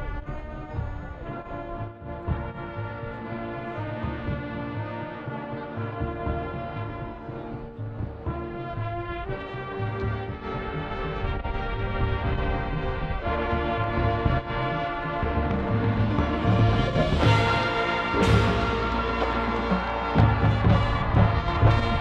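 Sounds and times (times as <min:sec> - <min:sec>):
marching band playing: 0:00.0 - 0:22.0
low drums pulsing: 0:06.0 - 0:22.0.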